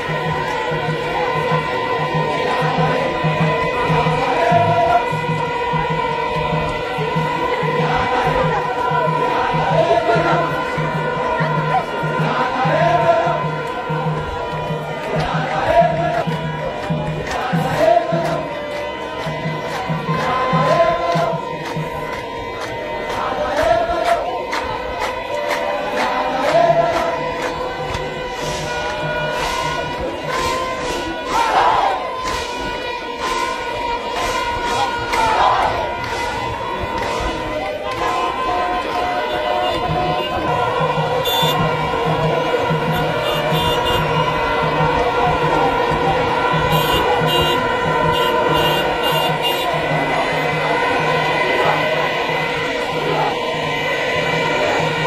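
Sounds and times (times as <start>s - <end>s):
crowd chanting a hymn: 0.0s - 55.0s.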